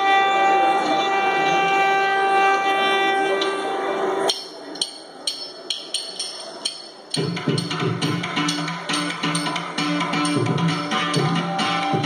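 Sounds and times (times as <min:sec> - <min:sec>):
small hand cymbals struck: 0:04.3 - 0:12.0.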